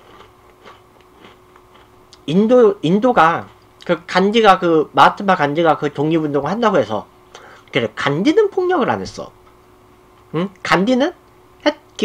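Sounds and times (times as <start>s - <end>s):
person chewing crunchy snack: 0.0s - 2.2s.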